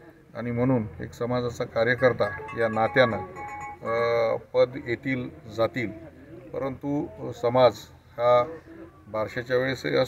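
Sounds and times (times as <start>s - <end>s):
man speaking: 0.6s - 5.3s.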